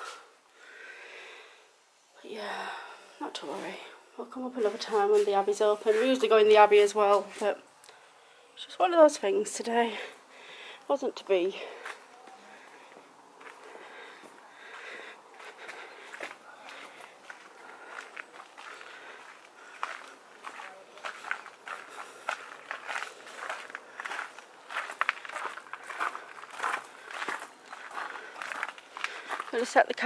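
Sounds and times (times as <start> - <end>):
footsteps on gravel: 4.6 - 7.6, 11.7 - 30.0.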